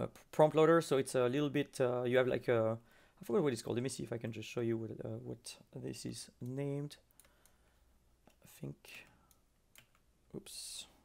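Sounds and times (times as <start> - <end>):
faint keyboard clicks: 6.4 - 7.6, 8.2 - 10.1.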